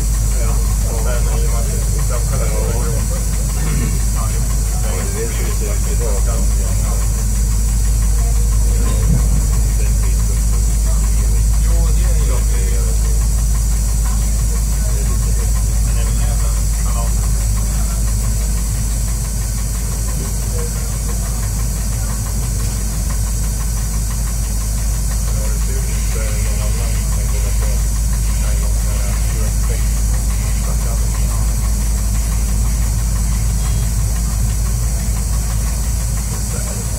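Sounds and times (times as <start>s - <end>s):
railcar engine rumble: 0.0s - 36.9s.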